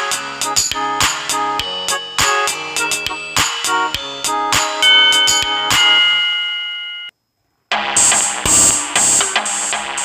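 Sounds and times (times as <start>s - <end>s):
bright synth and drum music: 0.0s - 6.2s, 7.8s - 10.0s.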